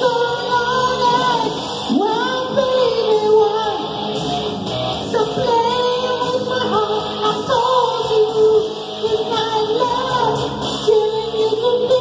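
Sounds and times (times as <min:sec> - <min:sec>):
backing track music: 0:00.0 - 0:12.0
man singing rock into microphone: 0:05.0 - 0:12.0.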